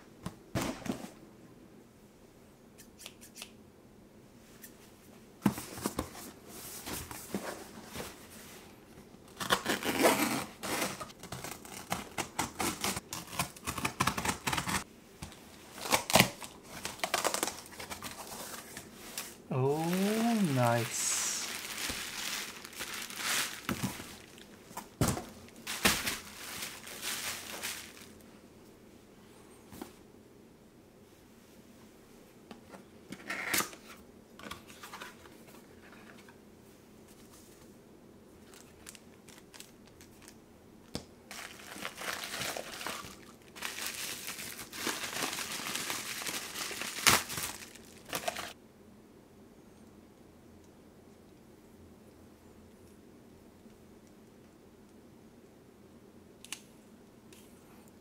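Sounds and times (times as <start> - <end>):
packing tape tearing: 9.3 - 14.8, 15.8 - 19.3, 21.2 - 24.5, 25.6 - 28.1, 41.3 - 48.6
paper rustling and crinkling: 15.7 - 28.2, 41.3 - 48.6.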